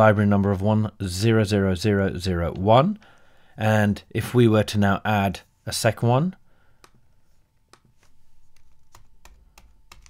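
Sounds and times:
computer keyboard keys tapping: 7.7 - 10.0.

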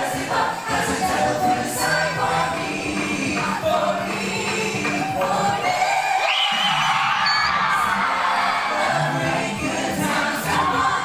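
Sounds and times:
a cappella group singing: 0.0 - 11.0
crowd cheering: 3.4 - 11.0.

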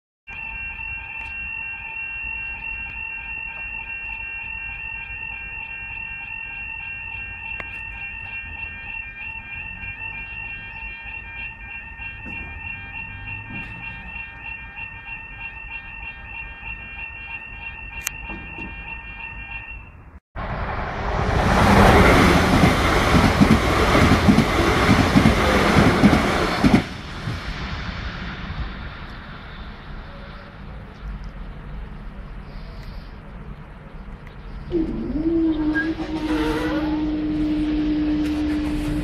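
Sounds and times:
level crossing warning alarm: 0.3 - 20.2, 21.2 - 26.9, 34.5 - 39.0.

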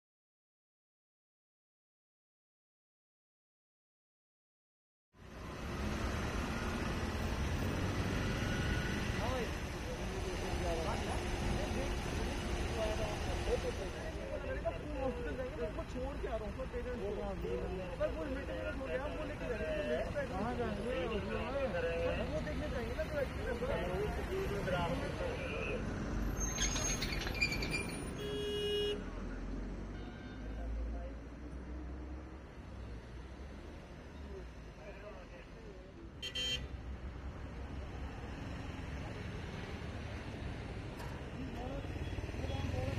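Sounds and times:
voices talking: 9.1 - 29.5, 37.4 - 42.9
short car horn toot: 28.2 - 29.0, 36.2 - 36.7.

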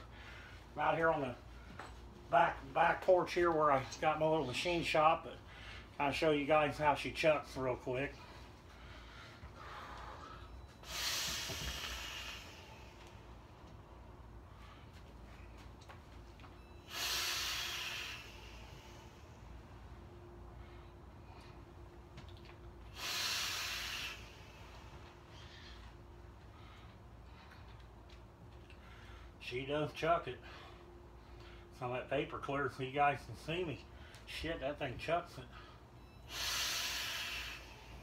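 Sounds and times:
drawn breath: 8.2 - 13.1, 16.8 - 19.4, 22.9 - 25.9, 35.5 - 38.0
breathy rush of vapour: 16.9 - 19.2, 22.9 - 24.8.

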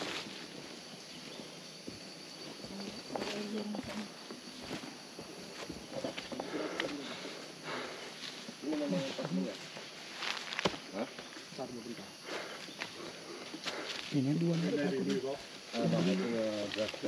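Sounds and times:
high-pitched insect drone: 0.0 - 17.0
low voices: 5.7 - 9.8, 10.8 - 17.0.

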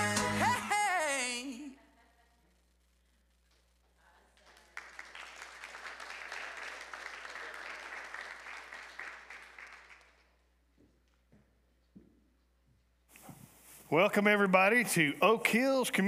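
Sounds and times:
congregation applauding: 4.5 - 10.5.

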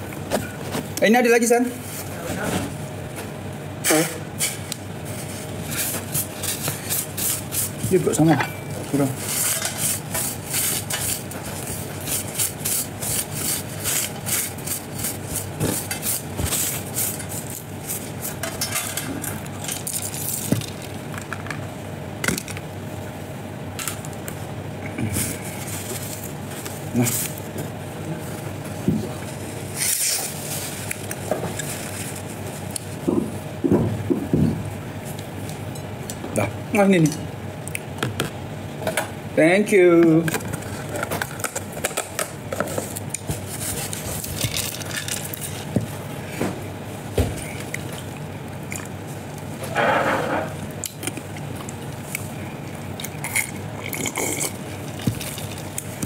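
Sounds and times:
steady low hum: 0.0 - 56.0
tableware rustling and scraping: 3.9 - 20.7, 49.6 - 50.6.

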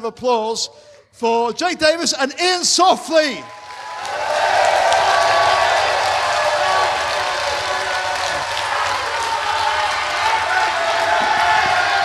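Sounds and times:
audience clapping: 3.4 - 12.0
shouts and whoops: 3.4 - 12.0.

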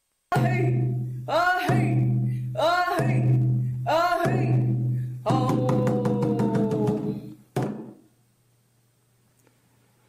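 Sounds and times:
person singing: 0.3 - 7.4
hand drum beats: 0.3 - 8.0.

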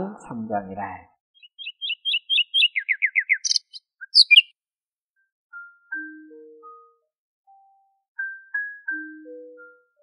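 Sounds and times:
songbird singing: 1.4 - 4.6.

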